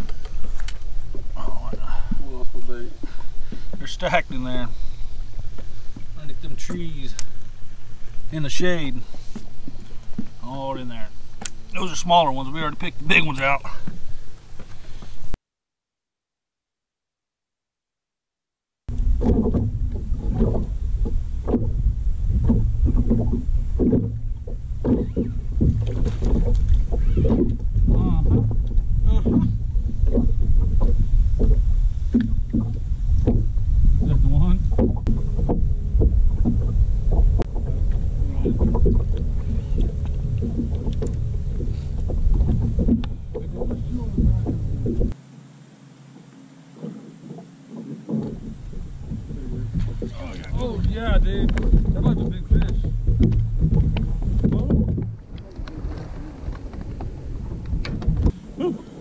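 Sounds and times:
small waves slapping hull: 0:00.0 - 0:15.4, 0:18.9 - 0:45.2, 0:46.1 - 0:59.0
wind rumbling on microphone: 0:00.0 - 0:15.4, 0:18.9 - 0:45.2, 0:46.2 - 0:59.0.

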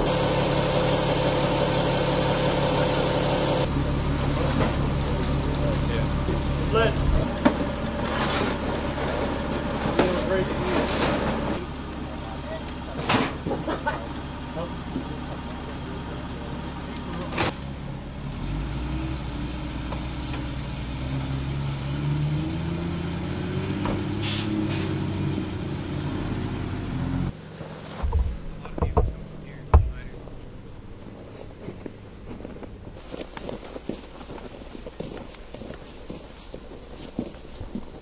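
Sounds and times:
truck engine speeding up: 0:00.0 - 0:09.9, 0:17.9 - 0:33.0
heavy thumps: 0:27.9 - 0:30.9.

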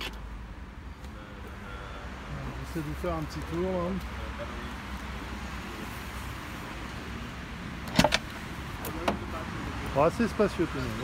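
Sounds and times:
car door latch clicking: 0:07.9 - 0:08.3.

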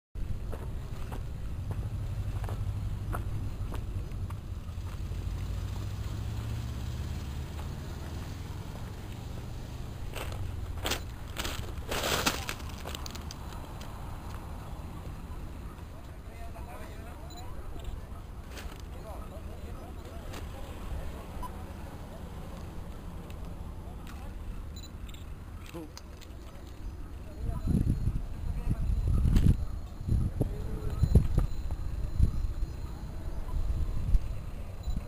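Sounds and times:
clicks and crackling bursts: 0:10.1 - 0:14.5
wind rumble on microphone: 0:27.4 - 0:35.0.

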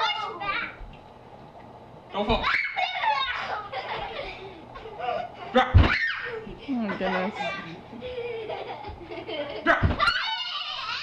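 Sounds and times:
child squealing: 0:02.4 - 0:03.5, 0:05.8 - 0:06.4, 0:09.7 - 0:11.0.

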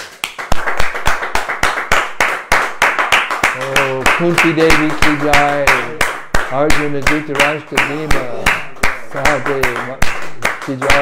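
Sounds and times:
people clapping in rhythm: 0:00.0 - 0:11.0.

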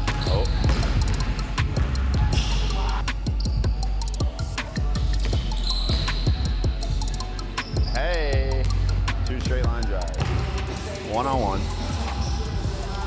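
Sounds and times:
background music with deep bass: 0:00.0 - 0:13.0
basketball bouncing on hardwood: 0:00.6 - 0:01.0.

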